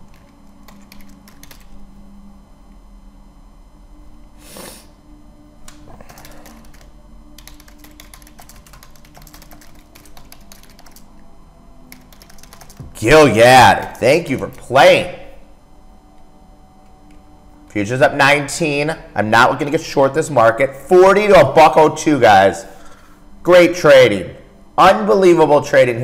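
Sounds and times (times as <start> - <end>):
typing on computer keyboard: 0.0 - 1.7, 5.7 - 11.1, 11.9 - 12.9
faint low hum: 0.0 - 26.0.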